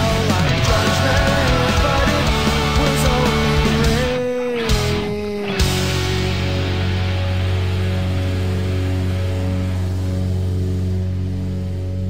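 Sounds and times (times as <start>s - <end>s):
electric guitar and bass chord ringing: 0.0s - 12.0s.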